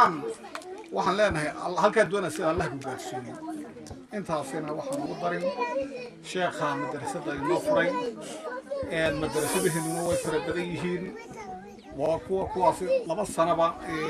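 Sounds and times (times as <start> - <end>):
man speaking into a microphone: 8.9 - 11.2
burst of hiss: 9.3 - 10.3.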